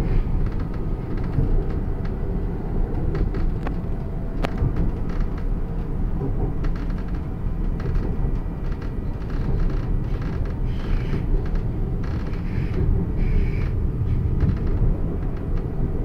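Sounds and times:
train rumbling on track: 0:00.0 - 0:16.0.

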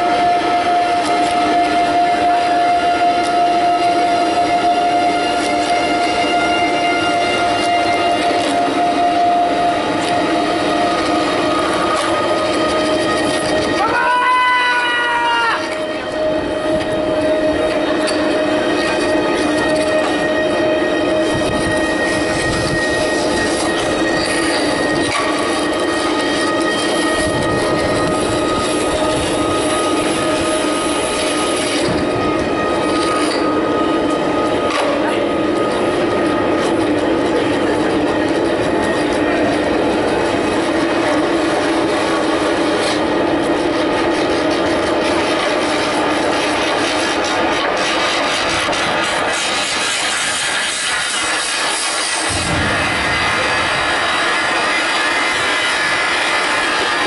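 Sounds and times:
grinding noise texture: 0:03.2 - 0:14.5, 0:15.6 - 0:57.0.

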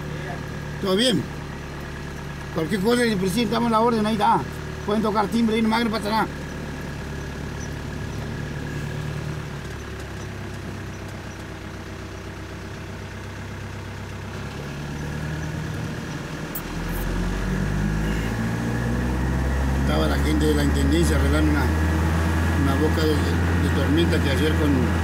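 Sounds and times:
truck engine from inside cab: 0:00.0 - 0:25.0.

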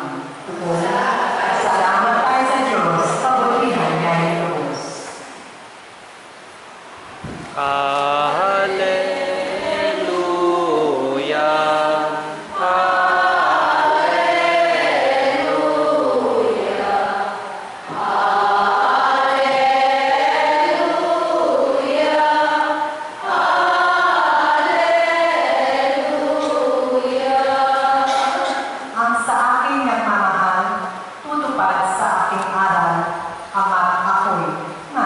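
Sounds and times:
choir singing a slow chant: 0:07.6 - 0:29.0.

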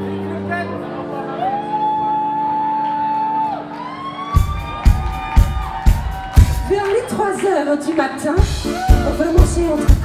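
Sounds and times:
live band music: 0:00.0 - 0:10.0
kick drum beat: 0:04.4 - 0:06.8, 0:08.4 - 0:10.0.

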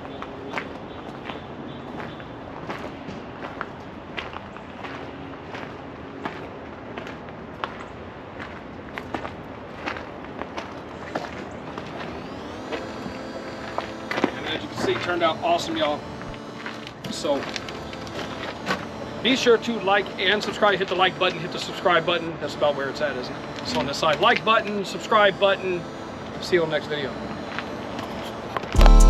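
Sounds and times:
steady background noise: 0:00.0 - 0:29.0
footsteps on gravel: 0:00.2 - 0:25.9, 0:26.5 - 0:28.8
faint rising tone: 0:11.8 - 0:28.9.

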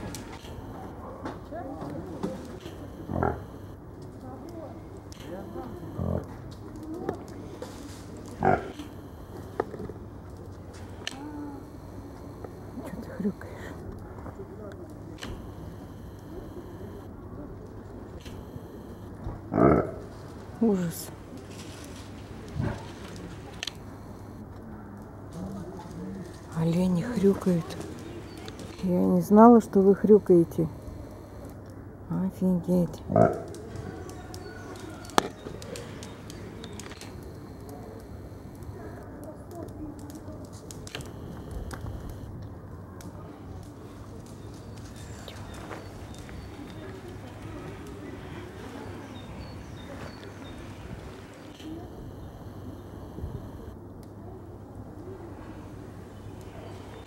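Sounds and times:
reindeer grunting: 0:03.1 - 0:03.4, 0:06.0 - 0:06.3, 0:08.4 - 0:08.8, 0:19.5 - 0:20.1.

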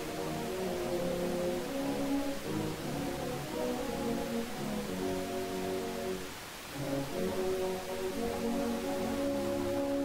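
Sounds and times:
brass band playing a hymn: 0:00.0 - 0:10.0.

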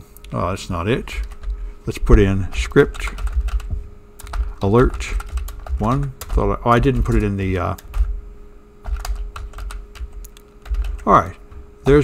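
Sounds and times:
steady low hum: 0:00.0 - 0:12.0
keyboard keys clicking: 0:02.9 - 0:08.1, 0:08.8 - 0:11.1.

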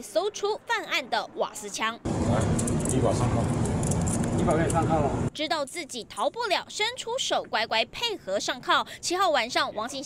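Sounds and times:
road traffic rumble: 0:02.0 - 0:05.3.

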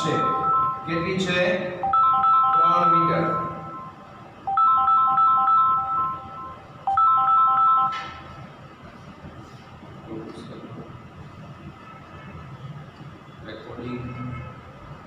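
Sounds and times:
phone ringtone melody: 0:00.0 - 0:01.2, 0:01.8 - 0:08.2.

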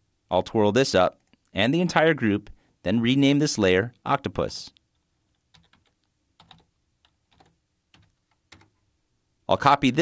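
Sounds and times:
keystrokes on computer keyboard: 0:05.3 - 0:08.8.

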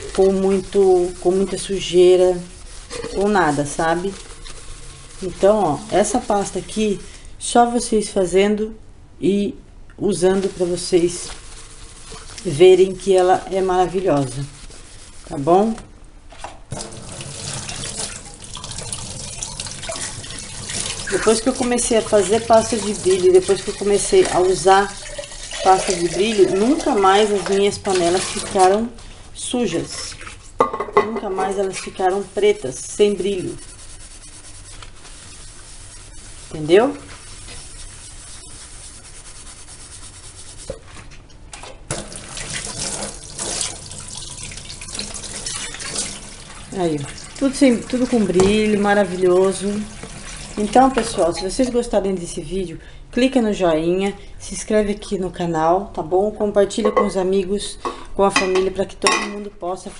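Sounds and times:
tap water running into sink: 0:16.7 - 0:28.7, 0:41.9 - 0:51.2.

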